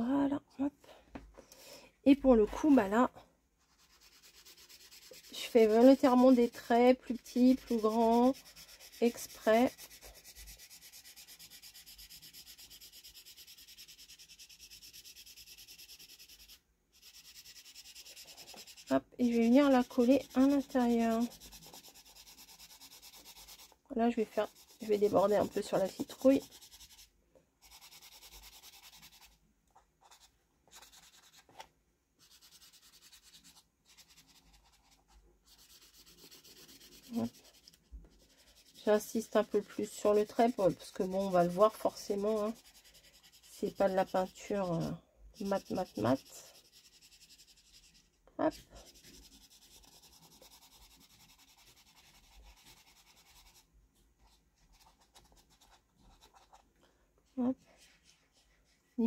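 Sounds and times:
marker scribbling on paper: 3.7 - 6.6, 7.2 - 29.3, 30.0 - 31.6, 32.2 - 53.6.

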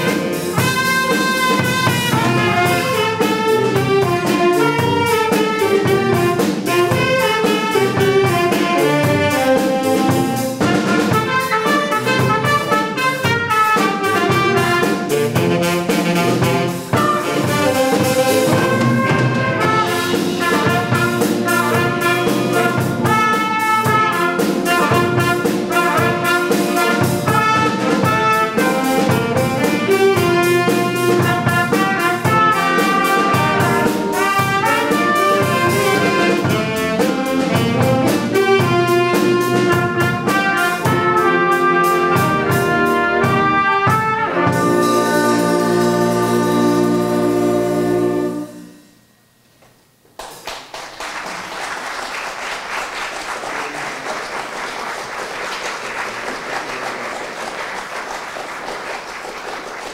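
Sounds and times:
drums keeping steady beat: 0.0 - 48.6
band playing jazz tune: 0.0 - 49.1, 50.4 - 59.9.

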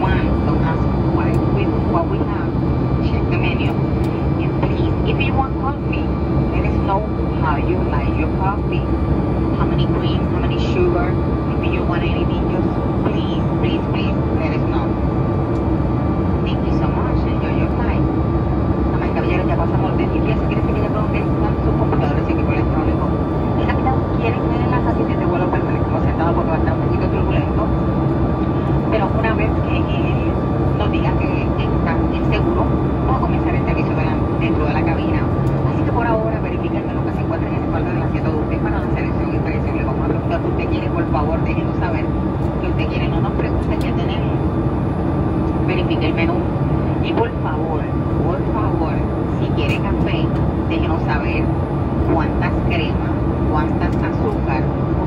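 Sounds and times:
voices: 0.0 - 15.1, 16.4 - 18.1, 18.8 - 27.8, 28.4 - 44.9, 45.5 - 55.0
high engine whine: 0.0 - 55.0
jet engine drone in cabin: 0.0 - 55.0.

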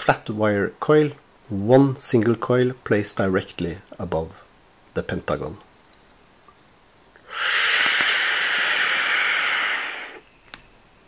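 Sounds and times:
airy hiss of vape draw: 7.2 - 10.3.

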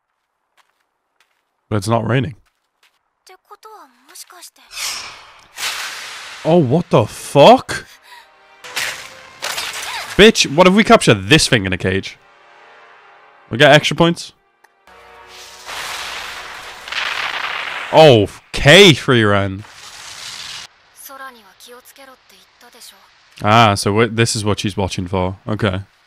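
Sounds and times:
rushing crackling hiss: 4.7 - 7.3, 15.2 - 26.0.

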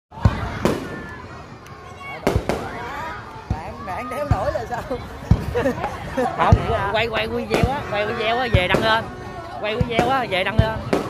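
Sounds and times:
firework bangs: 0.2 - 1.2, 2.1 - 11.0
crackling hiss of fireworks: 0.2 - 11.0.

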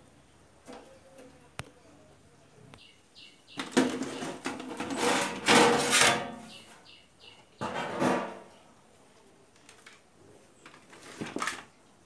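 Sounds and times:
metal cabinet scraping and knocking: 3.8 - 6.4, 7.6 - 8.5.

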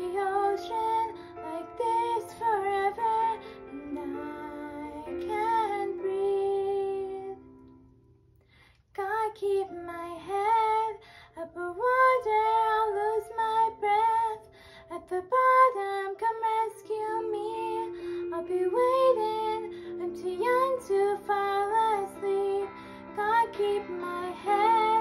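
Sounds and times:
girl singing: 0.0 - 7.6, 9.0 - 25.0.

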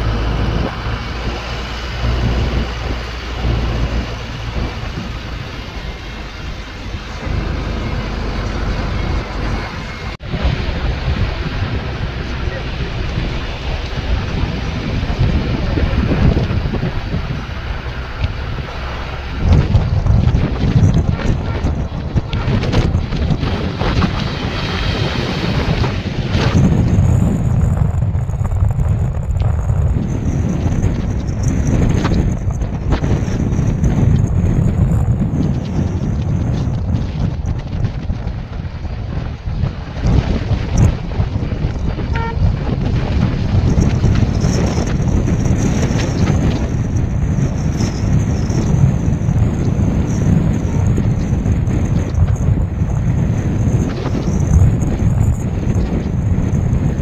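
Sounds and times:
car road and engine rumble: 0.0 - 57.0
wind rushing over microphone: 0.0 - 57.0.

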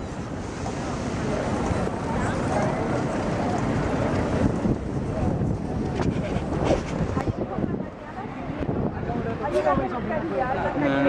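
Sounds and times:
busy city square background: 0.0 - 11.0
wind buffeting microphone: 0.0 - 11.0.

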